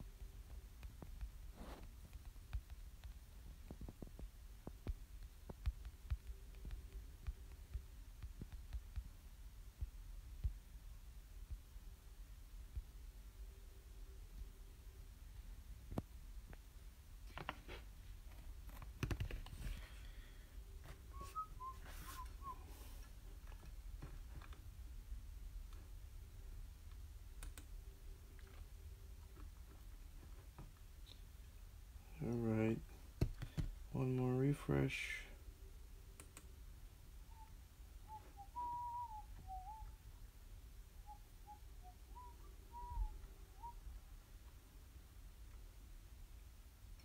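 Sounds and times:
person whistling short notes: 0:21.1 - 0:22.6, 0:38.1 - 0:40.0
person softly whistling: 0:21.1 - 0:22.9, 0:37.2 - 0:40.0, 0:41.0 - 0:43.8.

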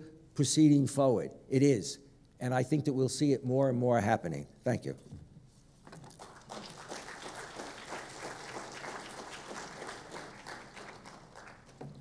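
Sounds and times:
audience applauding: 0:06.0 - 0:12.0.

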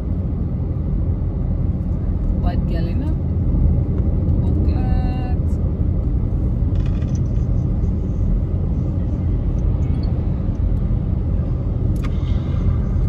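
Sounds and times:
car engine and road noise: 0:00.0 - 0:13.0.

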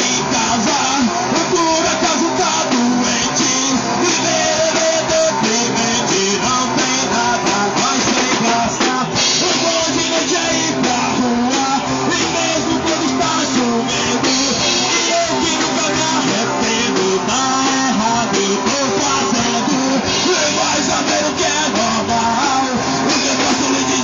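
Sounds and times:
bass guitar: 0:00.0 - 0:24.0
drum kit: 0:00.0 - 0:24.0
electric guitars: 0:00.0 - 0:24.0
person singing: 0:00.0 - 0:24.0.

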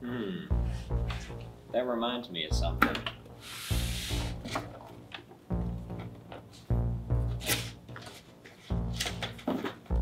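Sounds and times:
low bass background music: 0:00.0 - 0:10.0.

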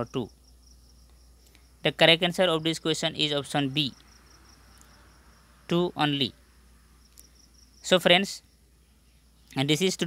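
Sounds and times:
man speaking: 0:00.0 - 0:00.3, 0:01.8 - 0:04.0, 0:05.7 - 0:06.4, 0:07.8 - 0:08.4, 0:09.5 - 0:10.0.

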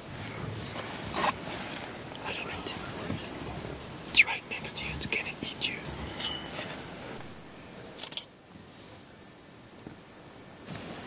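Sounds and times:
hushed whispering voices: 0:02.1 - 0:06.9.

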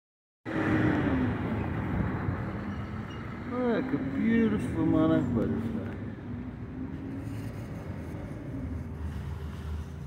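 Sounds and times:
vehicle passing on street: 0:00.5 - 0:10.0.

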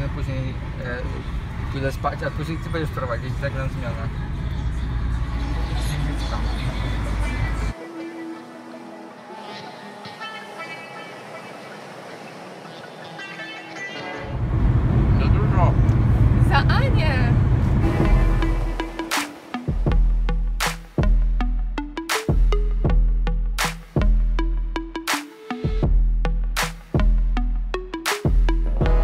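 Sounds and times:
road and engine rumble: 0:00.0 - 0:25.1
music: 0:06.6 - 0:11.5, 0:13.1 - 0:14.3, 0:17.8 - 0:29.0.

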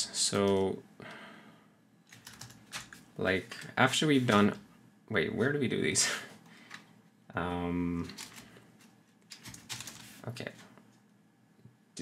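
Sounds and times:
computer keyboard typing: 0:02.1 - 0:03.7, 0:09.3 - 0:10.1.

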